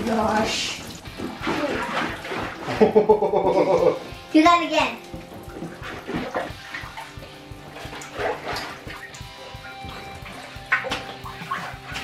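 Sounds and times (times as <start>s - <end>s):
background music: 0.0s - 12.0s
soda fizzing and sloshing: 0.0s - 12.0s.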